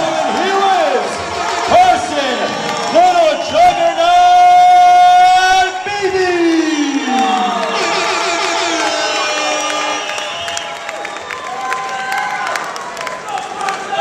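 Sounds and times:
announcer's amplified voice calling: 0.0 - 10.5
crowd cheering and shouting: 0.0 - 14.0.

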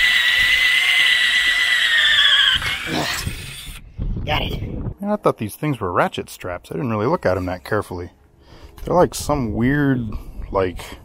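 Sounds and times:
drill bit whining through metal: 0.0 - 3.8.

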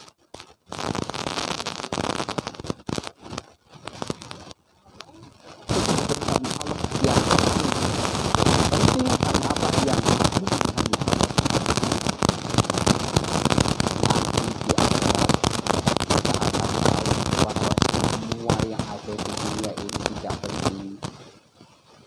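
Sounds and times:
dense crackling: 0.0 - 22.0.

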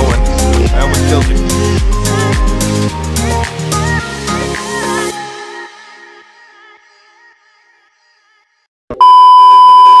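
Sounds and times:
background music: 0.0 - 7.0
high electronic beep: 9.0 - 10.0.

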